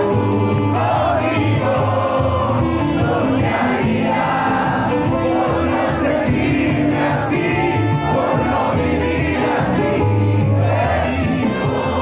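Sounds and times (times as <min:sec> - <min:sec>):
crowd singing along: 0:00.0 - 0:12.0
live band playing: 0:00.0 - 0:12.0.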